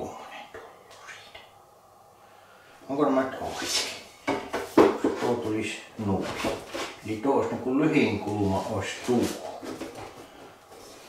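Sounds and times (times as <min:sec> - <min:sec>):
wooden board knocking and sliding: 0:04.3 - 0:05.3.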